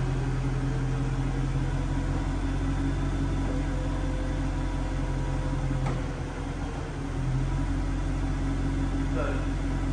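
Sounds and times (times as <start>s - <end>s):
motor hum with whine: 0.0s - 9.9s.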